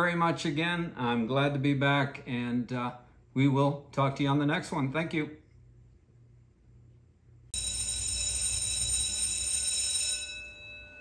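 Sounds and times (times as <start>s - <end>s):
bright bell-like chime: 7.6s - 11.0s.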